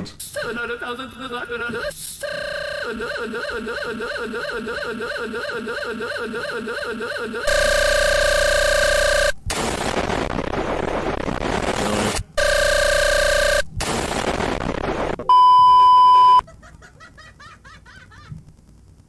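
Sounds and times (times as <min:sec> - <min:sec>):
warbling tone: 0:02.8 - 0:08.5
explosion: 0:09.5 - 0:12.1, 0:13.8 - 0:15.2.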